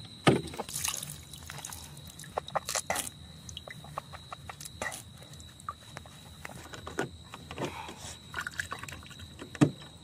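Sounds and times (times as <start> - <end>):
water sloshing and splashing: 0.5 - 5.8, 8.2 - 9.4.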